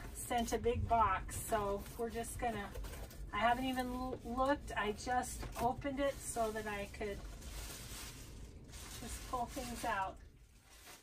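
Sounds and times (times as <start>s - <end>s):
paper and packaging rustling: 1.3s - 11.0s.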